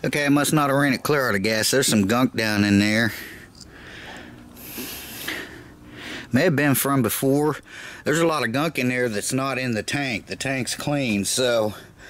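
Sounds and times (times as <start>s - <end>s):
faint breathy hiss: 3.1s - 6.4s.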